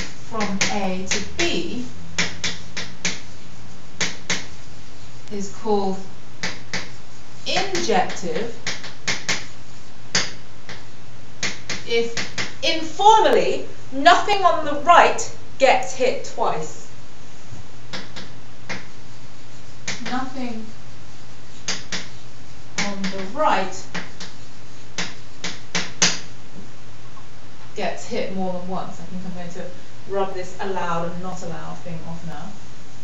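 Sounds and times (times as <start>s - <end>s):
chalk tapping on blackboard: 0.0s - 4.7s, 6.4s - 12.6s, 17.9s - 20.3s, 21.5s - 26.7s.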